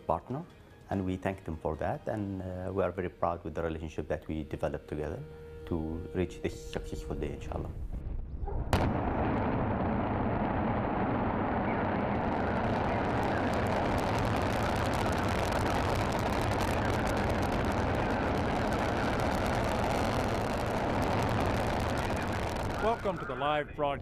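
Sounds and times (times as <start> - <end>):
rocket engines roaring: 4.3 - 8.2, 8.8 - 24.0.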